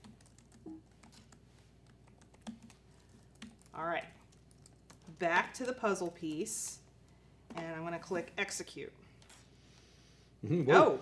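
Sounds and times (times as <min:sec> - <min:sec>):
typing on laptop keyboard: 0:00.0 - 0:06.6.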